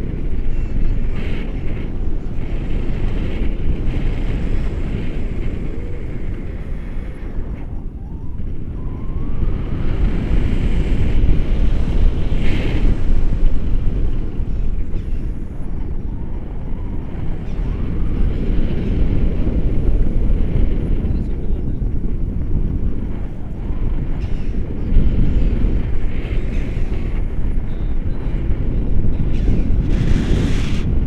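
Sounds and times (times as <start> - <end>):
wind buffeting microphone: 0.0 - 31.0.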